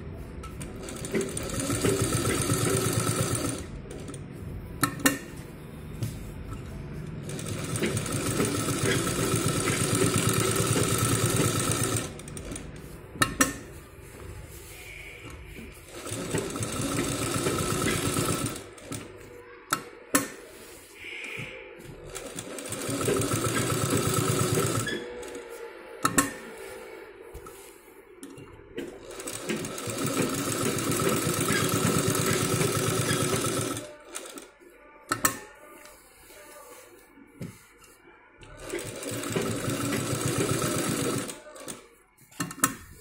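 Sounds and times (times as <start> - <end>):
sewing machine stitching: 0.6 - 4.2, 7.2 - 13.6, 15.8 - 19.2, 22.0 - 25.4, 28.8 - 34.5, 38.5 - 41.8.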